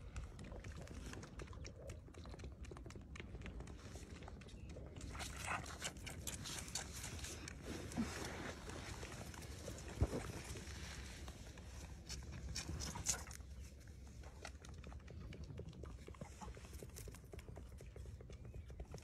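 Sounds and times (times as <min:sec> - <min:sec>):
lamb suckling from bottle: 0:00.0 - 0:19.0.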